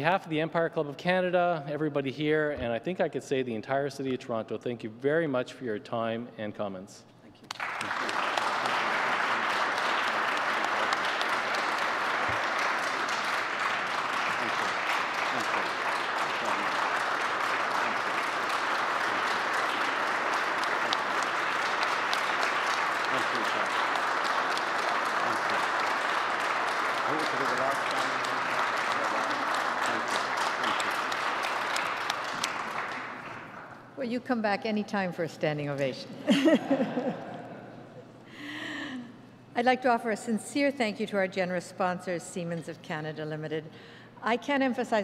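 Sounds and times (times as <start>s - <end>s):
audience applauding: 7.5s - 33.8s.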